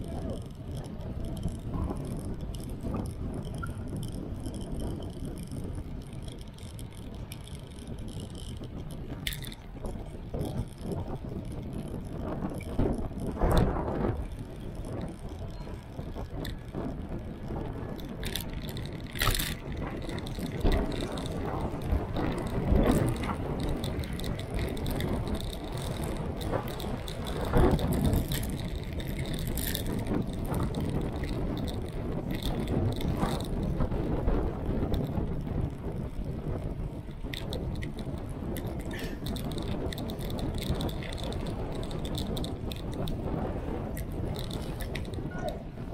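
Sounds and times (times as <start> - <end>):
bicycle rattling over bumps: 0.0 - 45.9
road rumble: 0.0 - 45.9.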